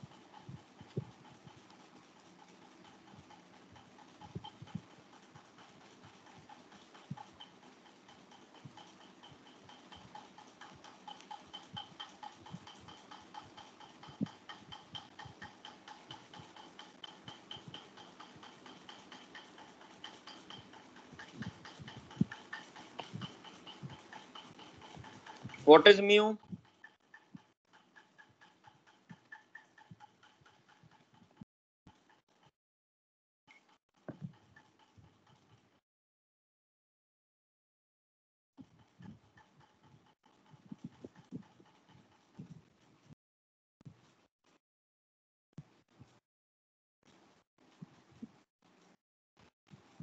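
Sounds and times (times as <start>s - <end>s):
faint even ticking: 0.0s - 31.4s.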